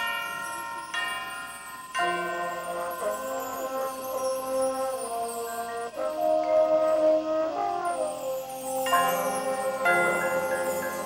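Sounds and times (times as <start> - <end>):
marching band playing held chords: 1.6 - 11.0.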